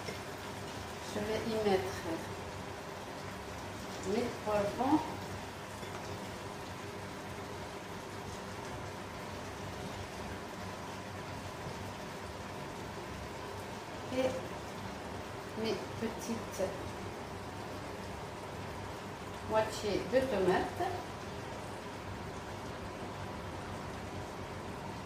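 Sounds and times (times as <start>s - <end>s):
food sizzling in oil: 0.0s - 25.0s.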